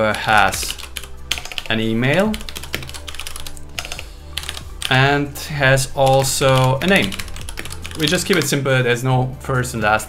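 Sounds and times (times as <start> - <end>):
typing on computer keyboard: 0.1 - 5.0, 6.0 - 8.5.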